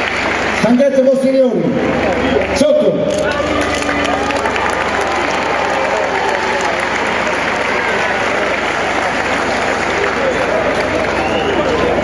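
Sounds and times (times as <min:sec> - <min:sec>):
crowd applauding: 0:00.0 - 0:12.0
crowd voices and shouts: 0:00.0 - 0:12.0.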